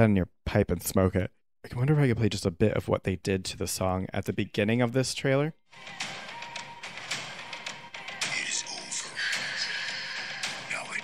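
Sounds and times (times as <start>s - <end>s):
quiet soundtrack music: 4.1s - 11.0s.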